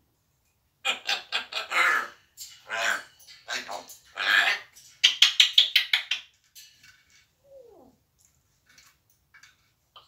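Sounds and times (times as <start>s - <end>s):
parrot calling: 0.8s - 6.3s.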